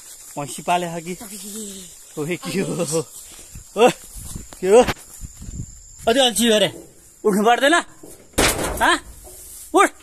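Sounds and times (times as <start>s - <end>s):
people speaking and calling: 0.2s - 5.3s.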